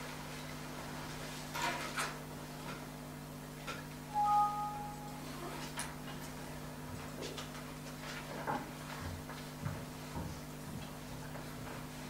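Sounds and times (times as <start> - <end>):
low electrical hum: 0.0 - 12.0
short electronic beep: 4.1 - 5.4.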